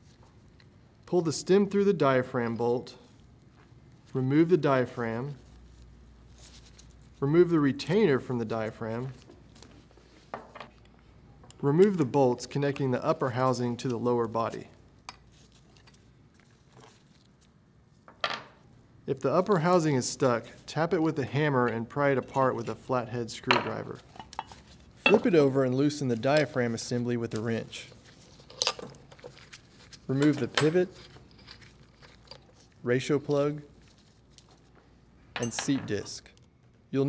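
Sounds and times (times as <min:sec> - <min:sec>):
faint clicks of metal parts: 0:28.3 - 0:36.8.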